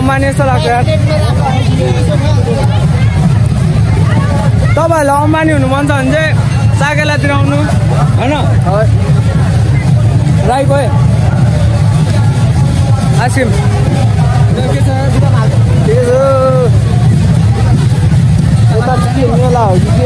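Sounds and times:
steady low rumble: 0.0 - 20.0
voices calling and talking: 0.0 - 20.0.

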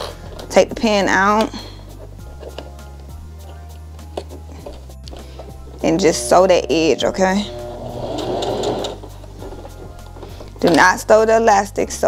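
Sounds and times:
sewing machine stitching: 7.5 - 9.0.

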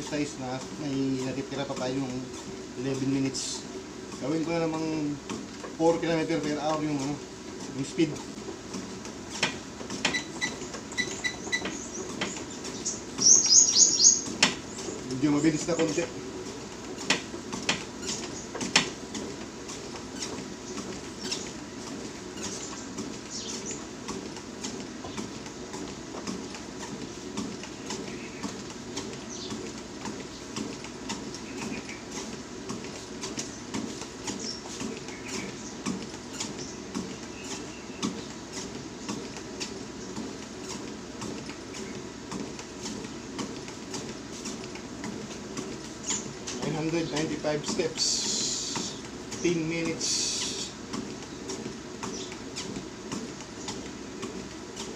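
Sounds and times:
footsteps on treadmill: 0.0 - 54.9
treadmill motor hum: 0.0 - 54.9.

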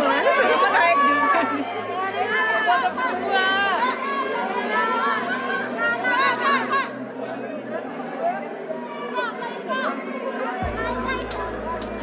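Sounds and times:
crowd chattering and calling out: 0.0 - 12.0.

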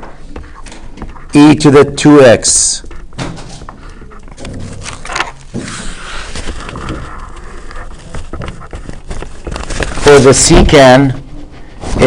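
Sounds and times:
felt-tip marker writing on paper: 7.0 - 9.5.

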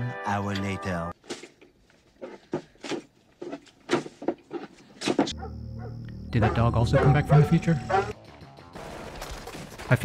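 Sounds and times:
dog barking: 5.3 - 8.2.

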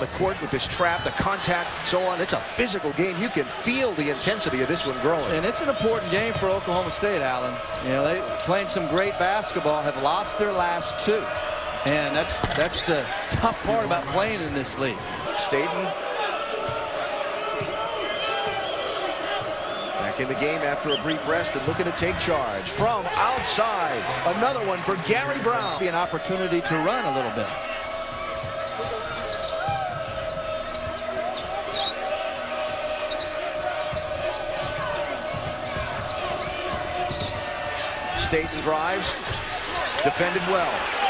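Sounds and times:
arena crowd din: 0.0 - 41.0
sneaker squeaks: 17.6 - 21.2, 27.7 - 40.2
basketball bouncing on hardwood: 33.8 - 37.5.

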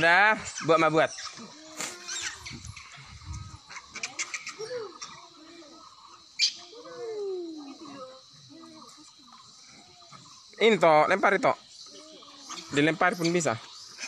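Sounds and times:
high insect drone: 0.0 - 14.0
macaques squeaky calls: 0.4 - 10.5, 11.7 - 14.0.

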